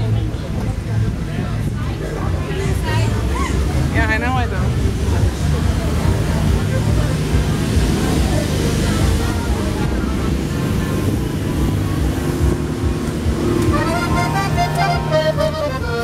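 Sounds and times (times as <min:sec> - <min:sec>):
low rumble of street noise: 0:00.0 - 0:16.0
piano accordion playing: 0:13.3 - 0:16.0.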